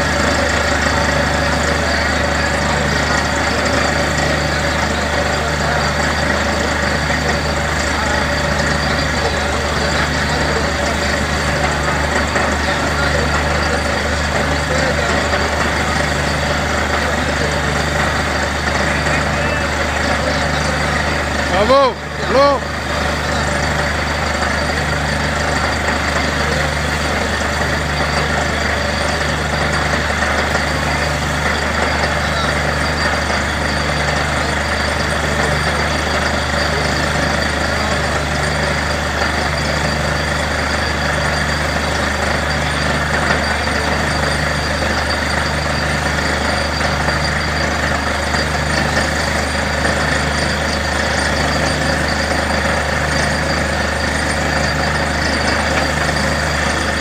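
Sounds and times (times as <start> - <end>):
drilling rig engine droning: 0.0 - 57.0.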